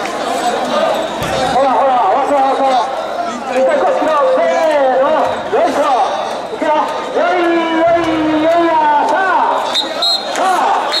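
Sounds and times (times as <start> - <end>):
people shouting together: 10.4 - 11.0.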